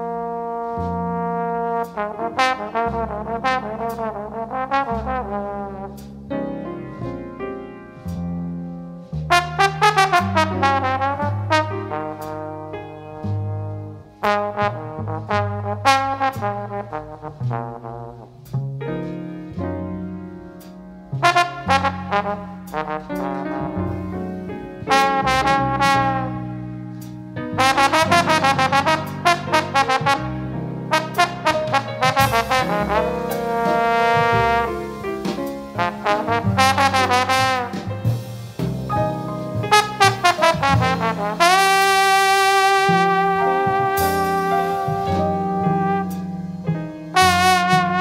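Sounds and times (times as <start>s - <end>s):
bass line: 0.0s - 48.0s
brass horn playing quick runs: 9.4s - 12.3s, 24.8s - 26.5s, 27.6s - 46.5s, 47.1s - 48.0s.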